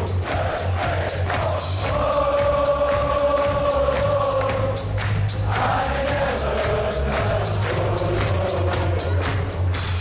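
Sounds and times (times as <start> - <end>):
crowd singing along: 0.0 - 9.6.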